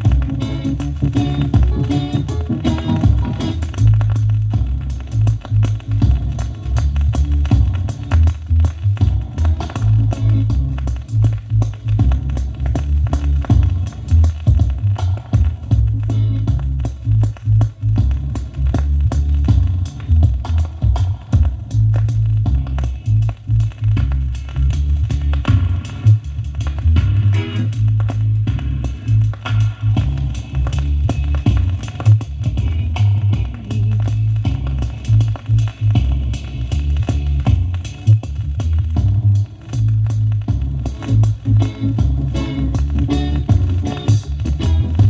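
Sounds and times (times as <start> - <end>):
drums with rim and snare hits: 0.0 - 45.0
heavy bass line: 0.0 - 45.0.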